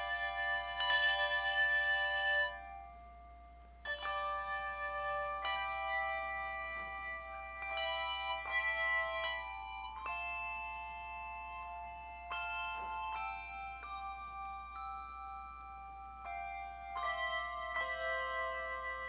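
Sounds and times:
handbell choir ringing chords: 0.0 - 19.0.

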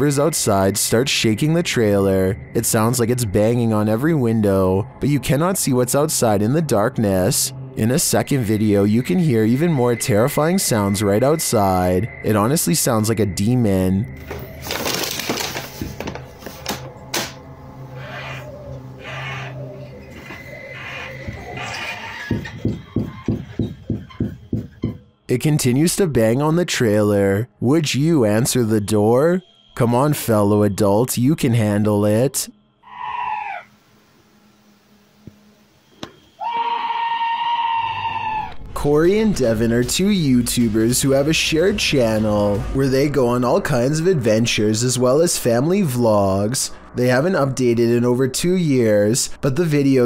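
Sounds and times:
screeching drawn-out cries: 17.8 - 23.3, 32.8 - 33.8, 36.2 - 38.6
long high scream: 32.8 - 33.7, 36.2 - 38.6.

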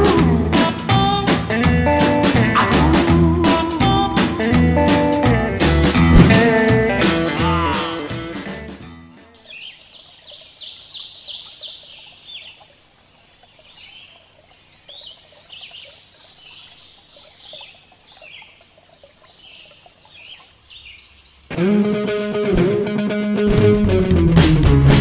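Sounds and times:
small birds chirping: 9.2 - 21.5
faint outdoor hiss: 9.2 - 22.8.

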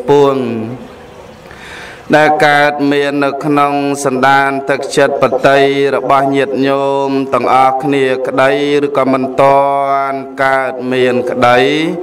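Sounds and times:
man chanting: 0.0 - 0.8, 2.1 - 12.0.

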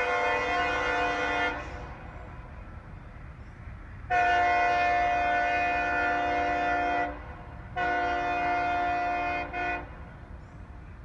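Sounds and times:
locomotive air horn blasts: 0.0 - 2.1, 4.1 - 10.1.

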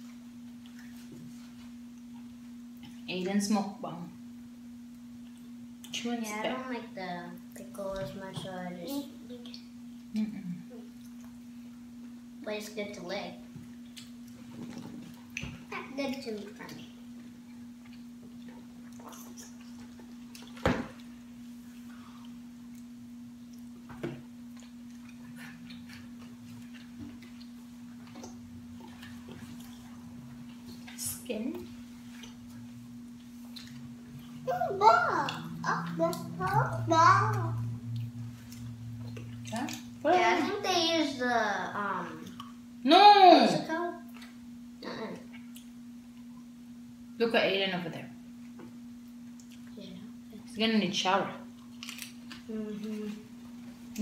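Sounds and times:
people chewing food: 0.0 - 3.1, 4.9 - 6.1, 9.3 - 12.2, 13.5 - 40.6, 41.7 - 42.6, 43.7 - 46.6, 48.4 - 50.4, 51.5 - 54.0
steady low hum: 0.0 - 54.0
people chewing fried chicken: 17.2 - 20.6, 24.5 - 30.9, 32.0 - 36.2.

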